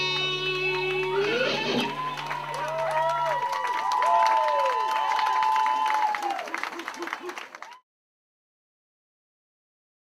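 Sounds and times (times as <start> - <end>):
audience clapping and cheering: 0.0 - 7.8.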